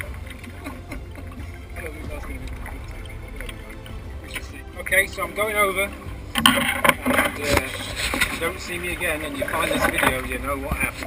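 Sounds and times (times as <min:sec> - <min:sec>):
man's voice: 0:01.6 - 0:06.2, 0:07.0 - 0:11.0.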